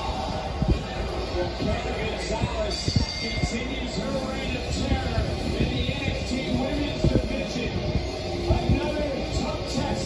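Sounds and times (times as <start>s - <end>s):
television music: 0.0s - 10.0s.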